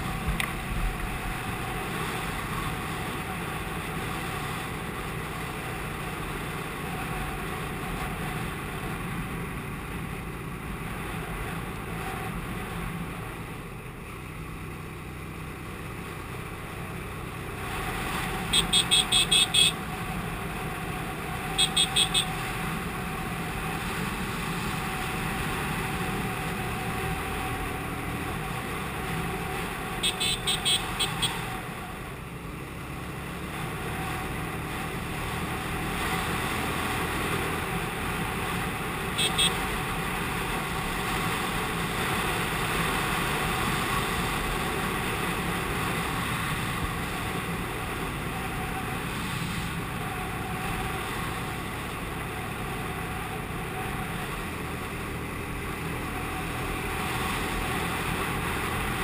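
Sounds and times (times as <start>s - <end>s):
motorcycle horn short beeps: 18.5s - 19.8s, 21.6s - 22.4s, 30.0s - 31.4s, 39.2s - 39.7s.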